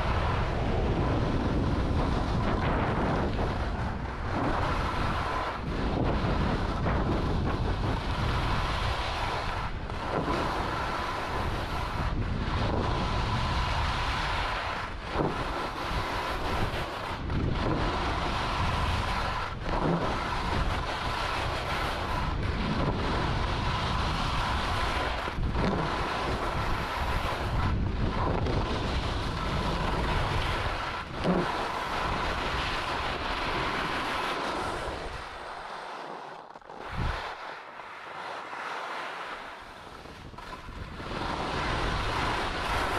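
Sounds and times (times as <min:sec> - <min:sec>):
wind on microphone: 0:00.0 - 0:38.6, 0:39.2 - 0:42.9
skis scraping over snow: 0:00.0 - 0:42.9.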